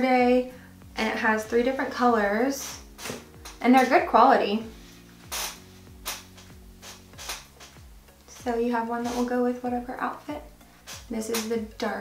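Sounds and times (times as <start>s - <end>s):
soft music with steady beat: 0.0s - 12.0s.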